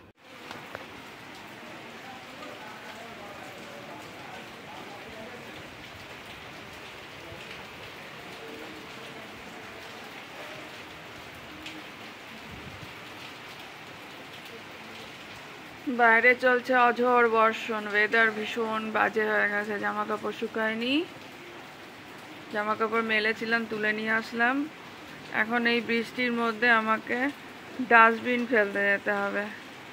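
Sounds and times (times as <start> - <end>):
steady rain falling: 0.0 - 29.9.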